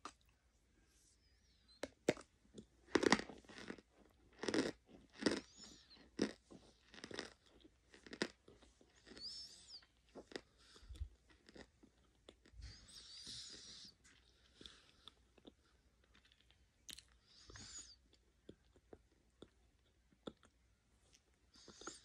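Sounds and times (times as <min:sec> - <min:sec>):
person chewing crunchy food: 0:01.8 - 0:22.0.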